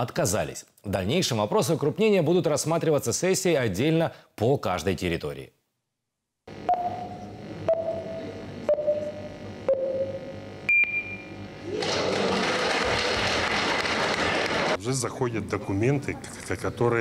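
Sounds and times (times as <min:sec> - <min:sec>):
higher end beep: 0:06.6 - 0:11.4
short descending beeps: 0:06.7 - 0:11.3.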